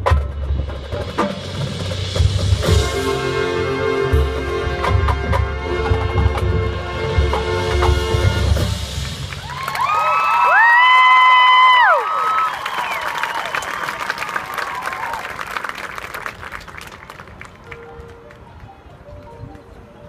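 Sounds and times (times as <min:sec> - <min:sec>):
marching band playing: 0:00.0 - 0:10.2
crowd applauding and cheering: 0:09.0 - 0:19.8.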